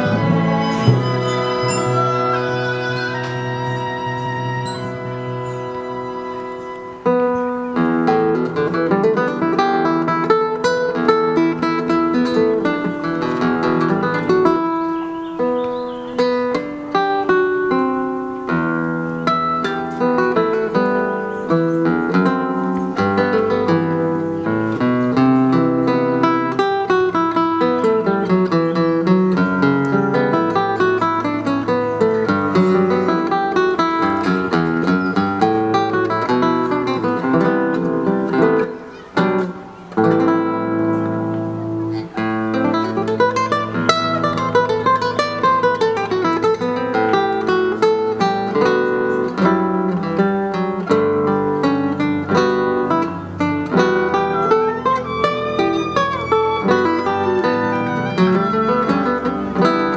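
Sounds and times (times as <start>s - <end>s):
classical guitar playing: 0.0s - 59.9s.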